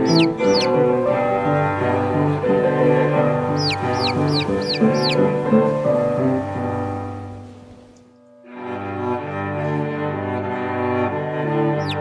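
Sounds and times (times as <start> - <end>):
sandpipers peeping: 0.0 - 7.8, 11.8 - 12.0
orchestral music with strings: 0.0 - 12.0.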